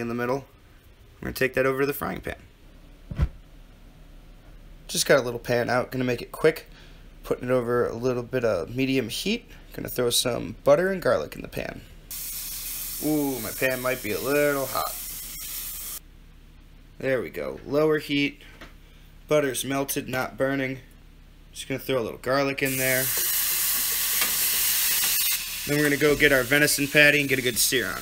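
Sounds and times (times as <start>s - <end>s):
dull thump: 3.1s - 3.4s
butter sizzling in a frying pan: 12.1s - 16.0s, 22.7s - 28.0s
person speaking: 13.0s - 15.0s.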